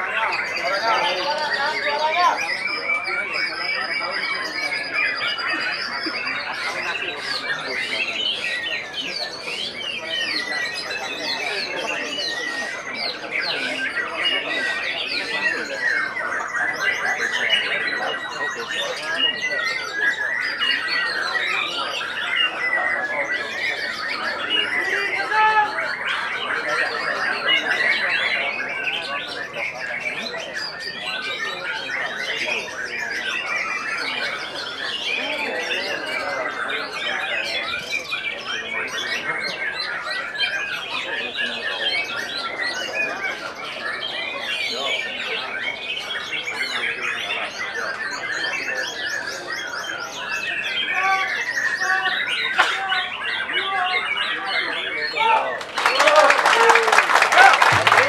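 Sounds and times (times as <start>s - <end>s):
birds whistling and trilling: 0.0s - 56.0s.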